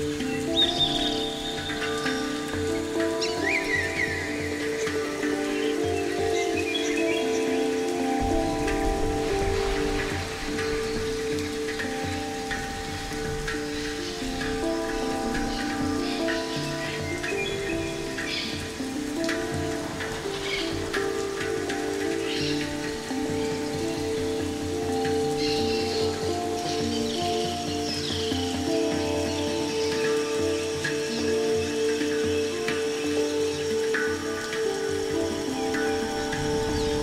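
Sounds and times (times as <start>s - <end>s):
soft rain-like patter: 0.0s - 37.0s
sustained synth chords: 8.0s - 16.2s.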